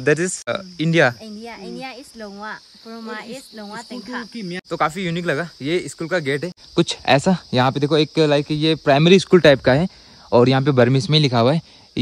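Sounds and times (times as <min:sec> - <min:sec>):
insects chirping: 0:00.0 - 0:12.0
soft talking voices: 0:00.0 - 0:12.0.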